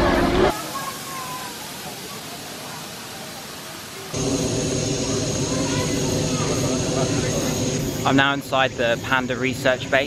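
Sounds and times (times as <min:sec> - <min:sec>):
people's voices: 0:00.0 - 0:10.0
misting nozzles hissing: 0:00.5 - 0:10.0
droning hum: 0:04.2 - 0:10.0.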